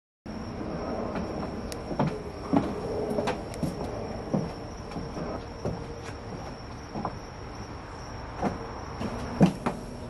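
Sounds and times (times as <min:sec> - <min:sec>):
thin high whine: 0:00.3 - 0:08.0
steady background hum: 0:00.3 - 0:10.0.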